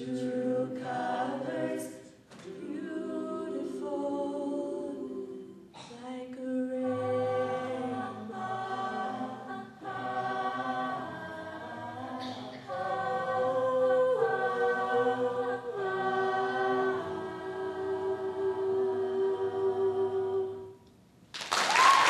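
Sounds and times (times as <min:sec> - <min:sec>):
a cappella ensemble singing chords: 0:00.0 - 0:21.2.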